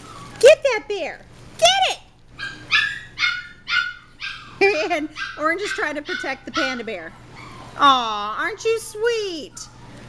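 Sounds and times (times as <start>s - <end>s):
puppies yipping: 0.0s - 0.4s, 2.4s - 7.8s.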